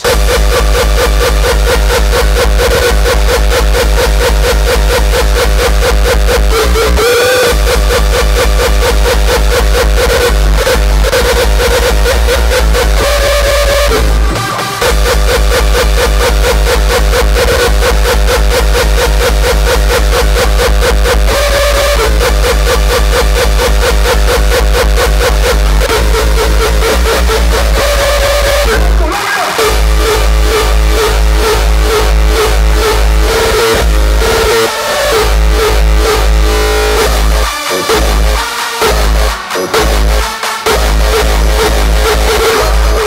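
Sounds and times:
pounding kick drum: 0.0s - 43.0s
repeating synth melody: 0.0s - 43.0s.

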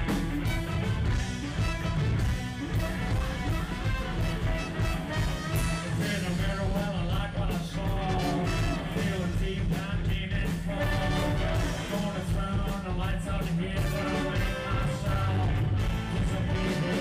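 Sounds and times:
live rock band playing: 0.0s - 17.0s
person singing: 5.1s - 17.0s.

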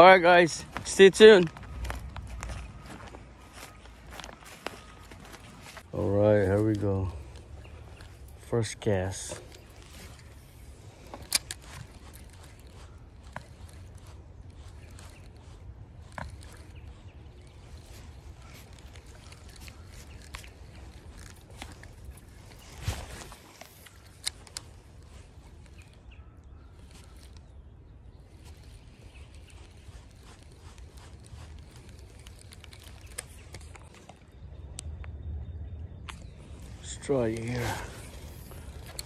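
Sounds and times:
small clicks: 11.0s - 27.5s, 28.3s - 35.2s.

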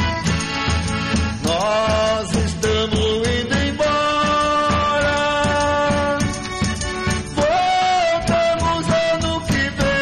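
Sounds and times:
folk music with guitar and accordion: 0.0s - 10.0s.

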